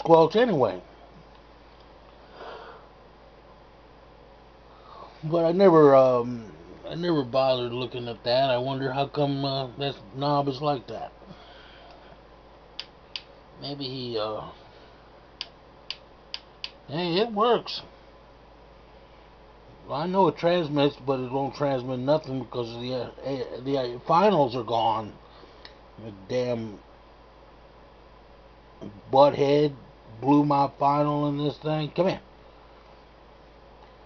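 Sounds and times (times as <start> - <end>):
faint steady hiss: 0.0 - 34.0
radio control clicks: 12.8 - 13.3, 15.4 - 16.8.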